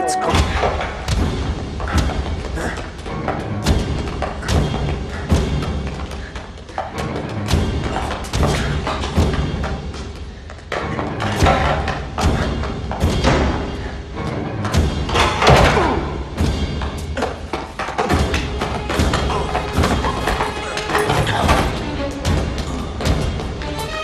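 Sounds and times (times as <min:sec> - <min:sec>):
tense film score: 0:00.0 - 0:24.0.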